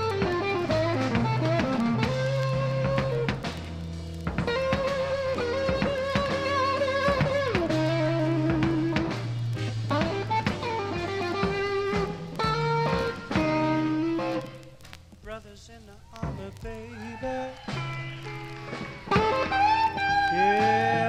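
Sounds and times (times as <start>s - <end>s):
electric guitar bent notes: 0.0s - 14.8s, 17.7s - 21.0s
electric blues band playing: 0.0s - 21.0s.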